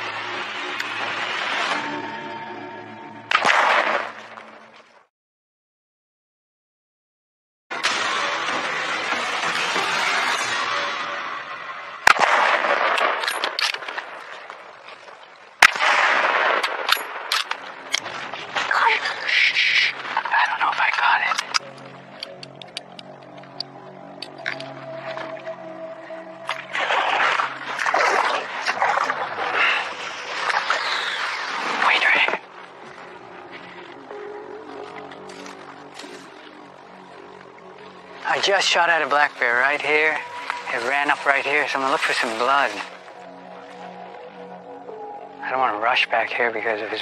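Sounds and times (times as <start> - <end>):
background music: 0.0 - 4.8, 15.6 - 47.0
rifle shot: 3.3 - 4.2, 12.0 - 14.0, 15.6 - 17.6.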